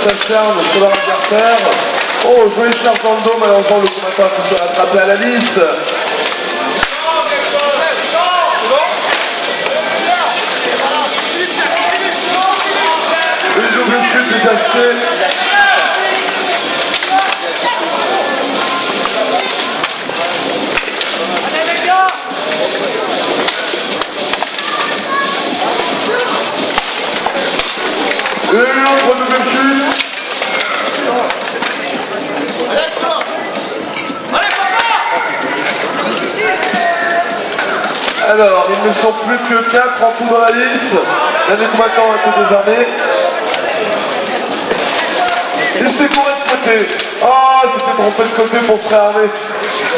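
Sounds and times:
many voices shouting: 0.0s - 49.9s.

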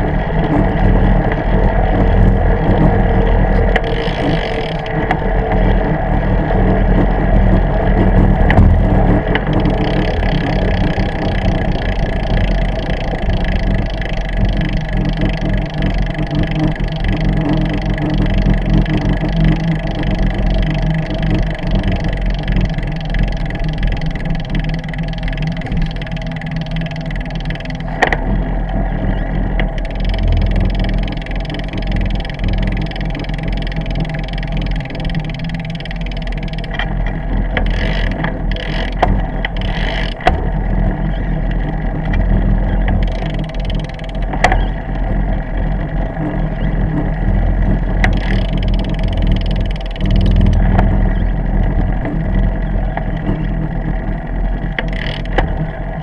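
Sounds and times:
bicycle riding rumble: 0.0s - 56.0s
wind noise: 0.0s - 56.0s.

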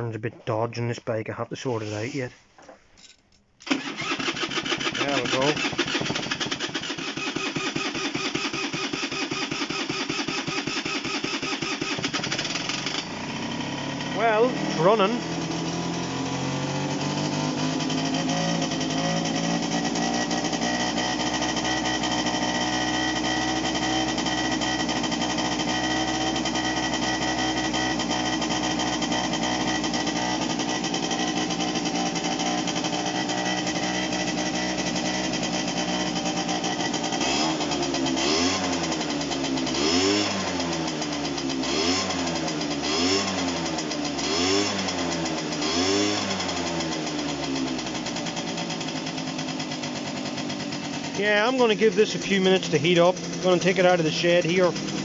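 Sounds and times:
scooter engine idling and revving: 3.6s - 55.0s.

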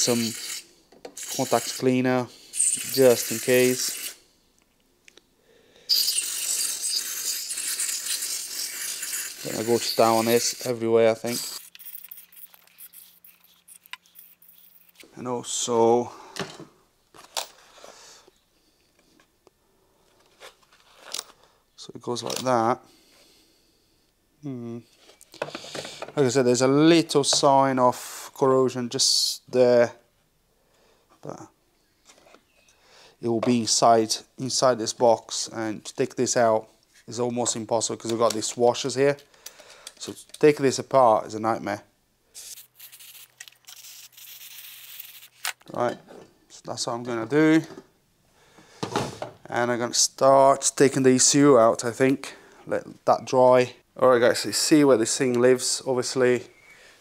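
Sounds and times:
aerosol spray hissing: 0.0s - 0.6s, 1.2s - 1.9s, 2.5s - 4.2s, 5.9s - 13.6s.

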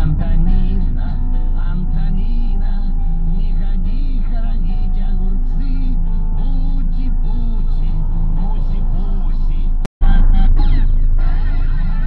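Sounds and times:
music with vocals: 0.0s - 12.0s.

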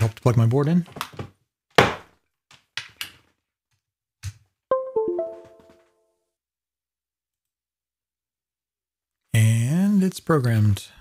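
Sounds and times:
two-note computer chime: 4.7s - 5.9s.

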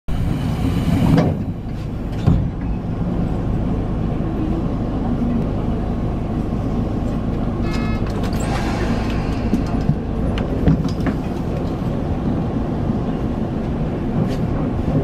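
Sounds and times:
train motors and wheels rumbling: 0.1s - 15.0s
train knocks: 0.5s - 2.8s, 7.7s - 12.0s.

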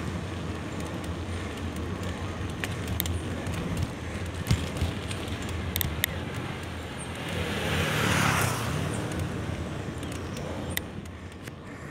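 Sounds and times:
motor vehicle passing: 0.0s - 11.9s
wind and road noise: 0.0s - 11.9s.

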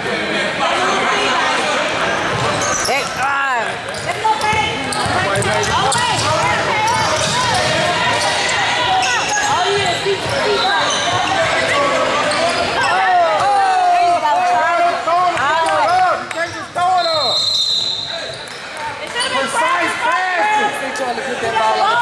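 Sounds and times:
voices echoing in hall: 0.0s - 22.0s
sneakers squeaking: 2.2s - 13.5s, 15.6s - 19.6s.

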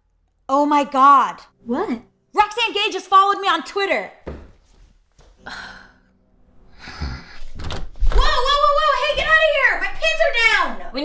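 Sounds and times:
door opening with rush of noise: 7.4s - 10.1s.

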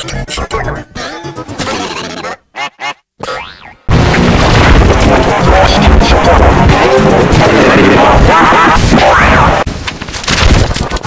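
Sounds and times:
wobbling cartoon boings: 0.2s - 3.9s
loud distorted blast: 3.9s - 9.7s.

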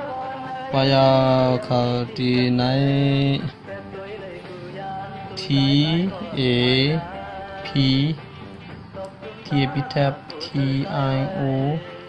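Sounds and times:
man chanting in held notes: 0.0s - 3.6s, 4.3s - 8.2s, 9.2s - 12.0s.

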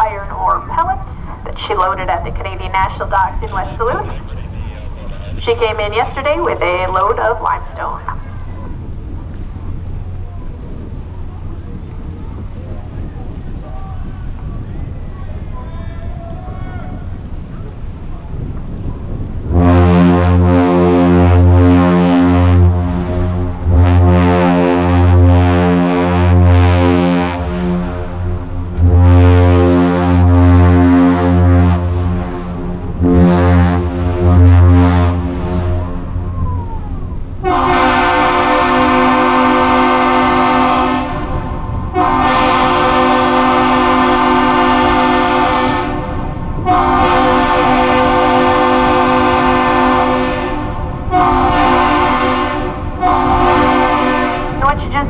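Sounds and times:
deep ship horn blasts: 0.0s - 55.0s
higher-pitched horn blasts: 19.5s - 36.0s, 37.4s - 54.9s.

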